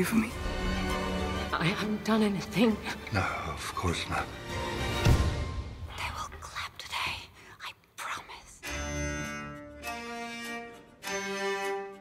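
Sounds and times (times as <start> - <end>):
person whispering: 5.9 - 8.7.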